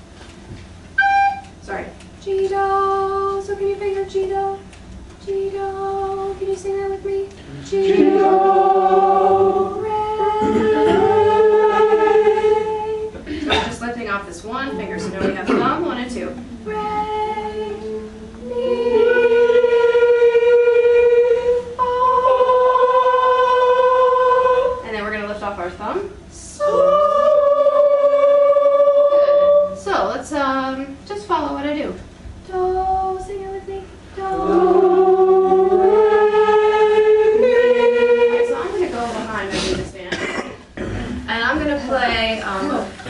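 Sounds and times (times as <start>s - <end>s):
students singing in unison: 5.3s - 13.2s, 16.3s - 24.9s, 26.4s - 29.8s, 32.5s - 39.9s.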